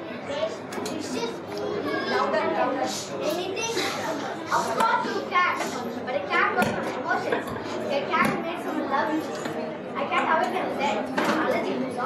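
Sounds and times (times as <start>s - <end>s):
children speaking: 0.0s - 12.0s.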